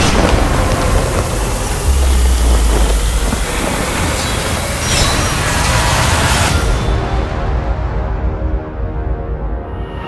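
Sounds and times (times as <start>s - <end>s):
dense wash of noise: 0.0s - 4.8s
deep low rumble: 0.1s - 4.8s.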